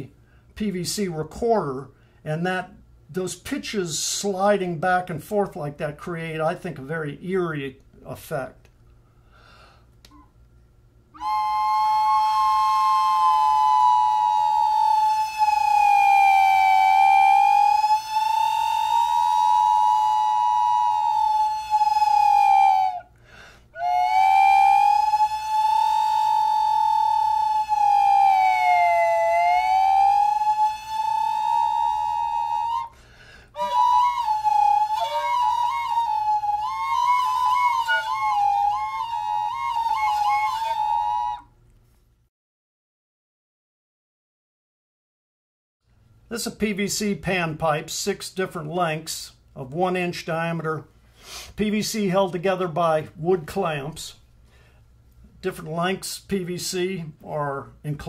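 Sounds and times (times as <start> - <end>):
wind instrument with sliding note: 11.2 - 23.0, 23.8 - 32.9, 33.6 - 41.4.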